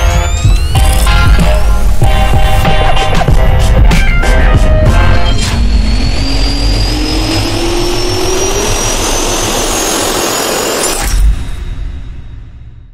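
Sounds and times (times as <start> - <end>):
jet turbine whine rising: 0.0 - 12.8.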